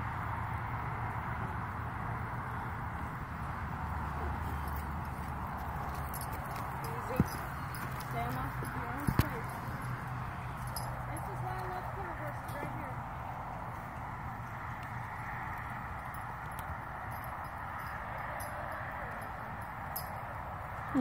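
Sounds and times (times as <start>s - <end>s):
horse hooves clopping on dirt: 0.0s - 21.0s.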